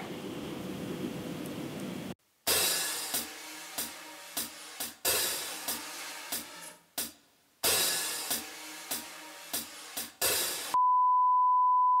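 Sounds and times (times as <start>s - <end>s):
drum music crash: 2.5s - 10.8s
steady test-tone beep: 10.8s - 12.0s.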